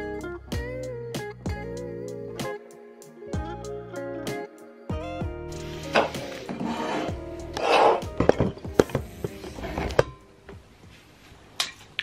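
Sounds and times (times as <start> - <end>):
music: 0.0 - 11.4.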